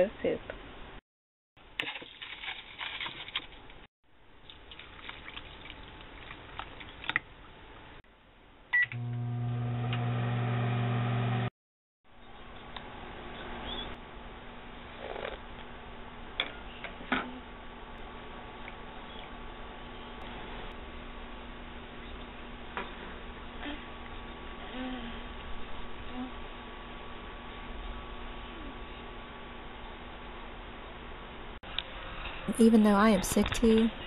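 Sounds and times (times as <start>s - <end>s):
microwave oven humming: 8.8s - 11.5s.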